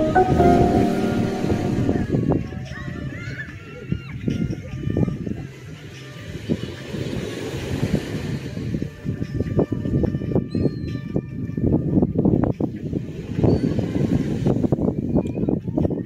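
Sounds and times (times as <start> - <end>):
wind on microphone: 9.4 - 16.0.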